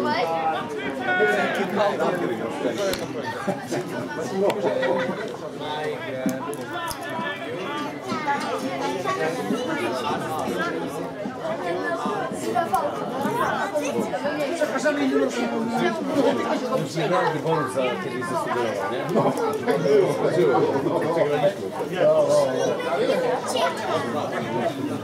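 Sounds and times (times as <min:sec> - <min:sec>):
indistinct chatter of voices: 0:00.0 - 0:25.0.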